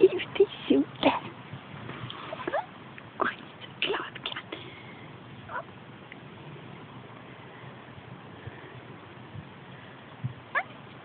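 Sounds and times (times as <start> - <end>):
soft low thump: 9.3 - 9.6.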